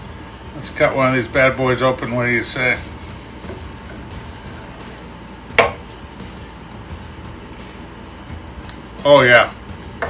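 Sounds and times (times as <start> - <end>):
knife knocking cutting board: 5.6 - 5.8.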